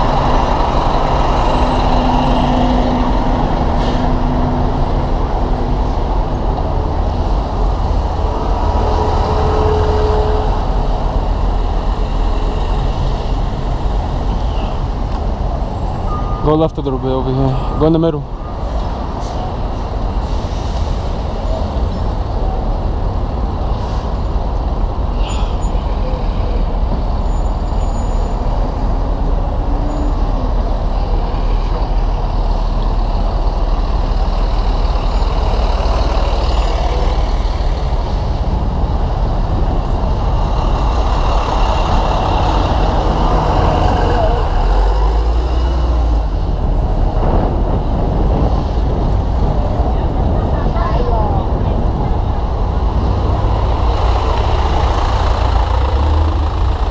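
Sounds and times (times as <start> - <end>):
dense city street traffic: 0.0 - 56.9.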